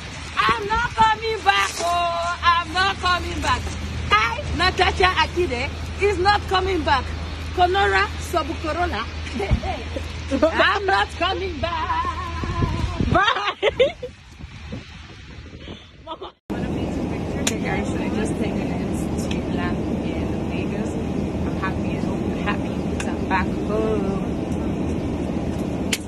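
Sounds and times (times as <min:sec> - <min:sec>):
quiet street sound: 0:00.0 - 0:26.0
person laughing: 0:13.0 - 0:14.2
aircraft cabin hum: 0:16.5 - 0:26.0.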